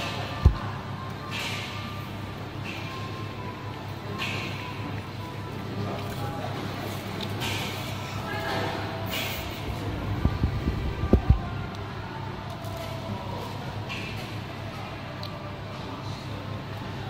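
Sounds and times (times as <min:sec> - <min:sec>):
faint background chatter: 0:00.0 - 0:17.0.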